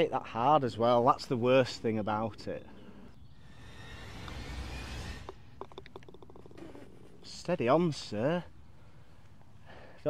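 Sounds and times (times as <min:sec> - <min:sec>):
ball rattling into the hole: 0:04.2 - 0:07.2
putter clicking golf ball: 0:05.2 - 0:07.2.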